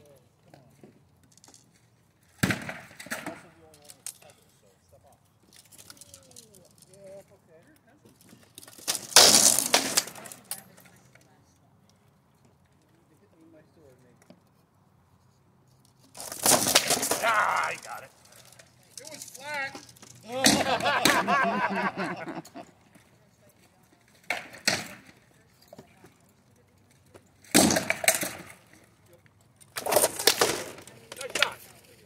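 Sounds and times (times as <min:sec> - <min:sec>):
sparring weapons cracking on shields: 0:16.2 - 0:17.9, 0:27.5 - 0:28.5
voices calling out: 0:16.2 - 0:23.0.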